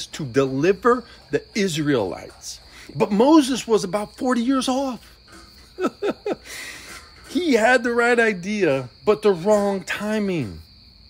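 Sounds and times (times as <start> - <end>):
cricket trill: 0.0 - 11.0
man chuckling: 5.3 - 7.1.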